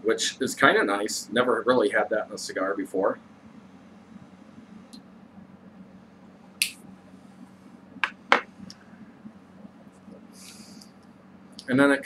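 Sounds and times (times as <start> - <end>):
low steady hum: 0.0 - 12.0
air hiss from mouth: 10.3 - 11.0.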